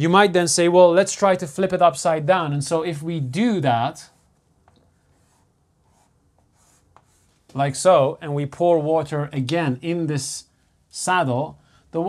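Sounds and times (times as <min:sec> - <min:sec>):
chalk scratching on chalkboard: 0:03.9 - 0:07.6.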